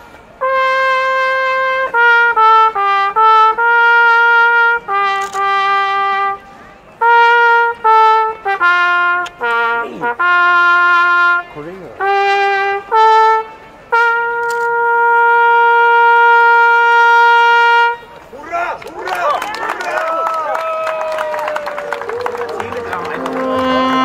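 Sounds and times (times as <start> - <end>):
solo trumpet melody: 0.0 - 18.2, 22.0 - 24.0.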